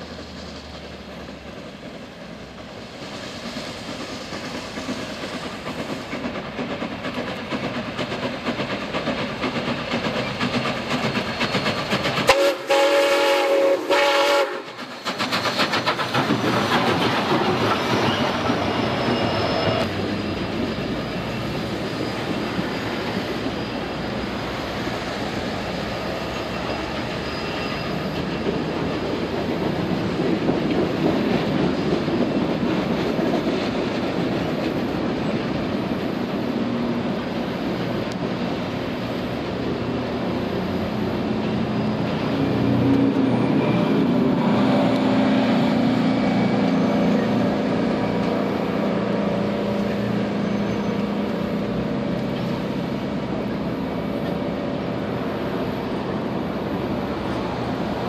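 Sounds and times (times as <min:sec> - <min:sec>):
train wheels on rails: 0:00.0 - 0:58.0
train horn blast: 0:12.3 - 0:14.7.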